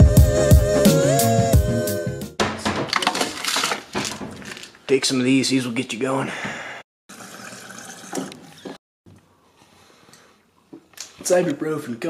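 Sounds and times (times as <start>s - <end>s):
water running into a glass: 7.1s - 8.4s.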